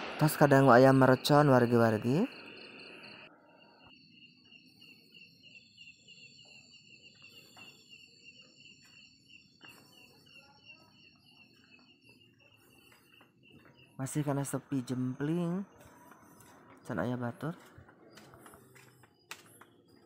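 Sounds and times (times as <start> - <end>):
insects chirping: 0.0 - 20.0
high-pitched insect tones: 0.1 - 17.8.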